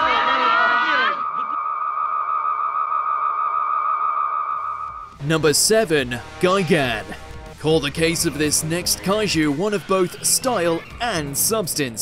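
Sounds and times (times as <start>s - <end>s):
steady high tone: 0.0s - 5.5s.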